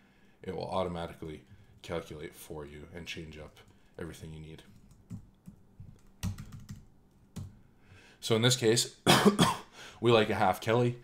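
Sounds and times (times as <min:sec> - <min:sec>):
computer keyboard keystrokes: 0:04.7 - 0:07.6.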